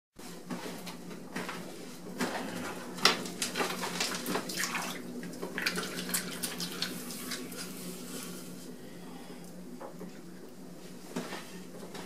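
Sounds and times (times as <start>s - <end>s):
steady low hum: 4.7s - 12.0s.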